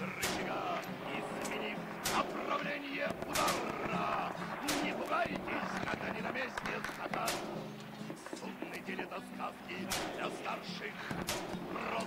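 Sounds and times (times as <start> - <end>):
gunshots: 0.0 - 12.0
indistinct voices: 0.0 - 12.0.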